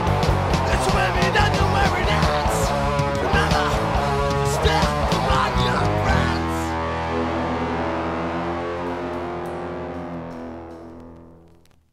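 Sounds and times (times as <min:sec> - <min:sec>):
electric guitar chord ringing: 0:02.6 - 0:11.6.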